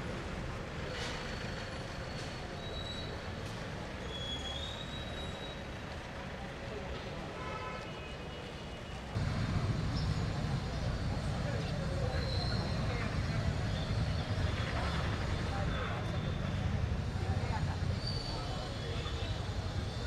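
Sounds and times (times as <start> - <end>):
steady low rumble: 9.2 - 11.9.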